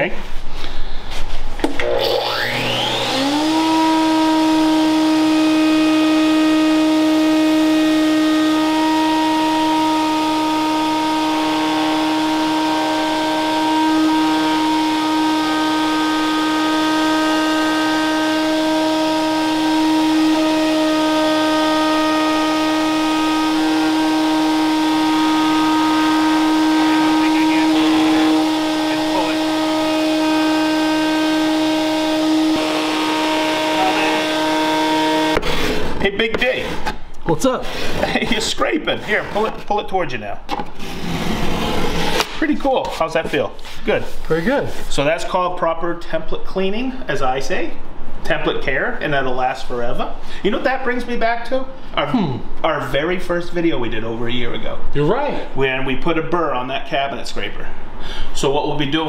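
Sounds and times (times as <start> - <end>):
router motor whine: 1.6 - 36.0.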